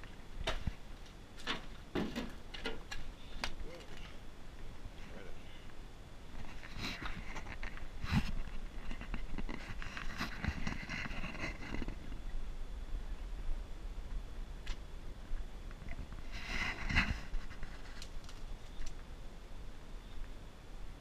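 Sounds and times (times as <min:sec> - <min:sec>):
knocks and bumps: 0:01.4 - 0:03.0.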